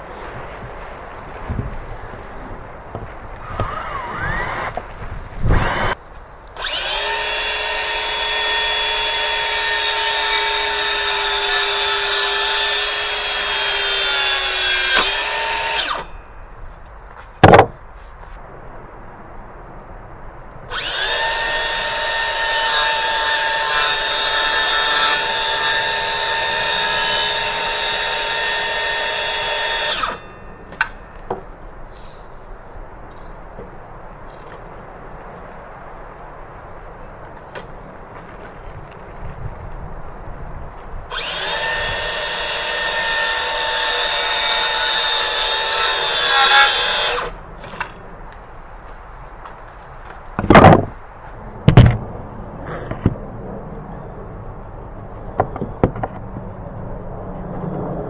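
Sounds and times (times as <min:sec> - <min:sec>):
cordless drill running: 0:03.5 - 0:04.8, 0:05.5 - 0:06.0, 0:06.6 - 0:16.1, 0:20.7 - 0:30.2, 0:41.1 - 0:47.3.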